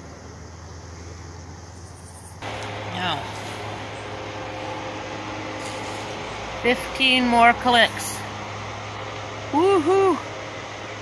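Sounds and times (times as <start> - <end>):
distant engine drone: 0.0 - 11.0
faint steady hum: 0.0 - 11.0.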